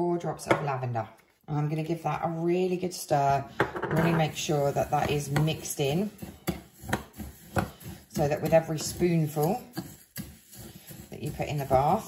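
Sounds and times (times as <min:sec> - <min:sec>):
spoon scraping bath salts: 0:01.7 - 0:12.0.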